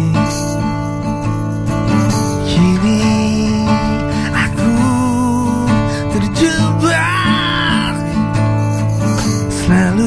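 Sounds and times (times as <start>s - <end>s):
acoustic guitars and bass playing: 0.0s - 10.0s.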